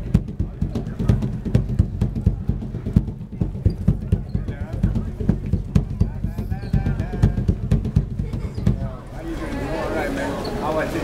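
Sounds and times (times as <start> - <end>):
sharp drum slaps: 0.0 - 9.0
hand drum played quickly: 0.0 - 9.1.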